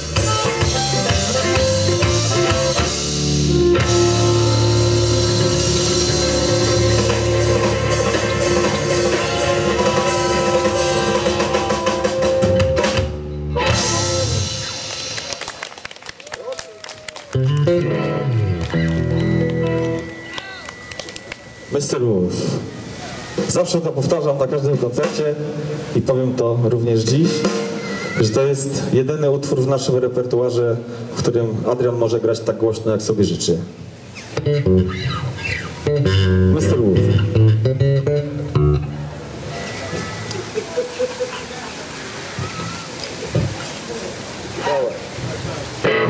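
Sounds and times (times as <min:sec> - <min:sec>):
drum kit: 0:00.0 - 0:15.5, 0:24.6 - 0:25.5, 0:27.0 - 0:28.2
electric guitar: 0:00.0 - 0:15.7, 0:16.9 - 0:23.5, 0:34.3 - 0:40.6, 0:45.4 - 0:46.0
harmonica: 0:00.2 - 0:12.5.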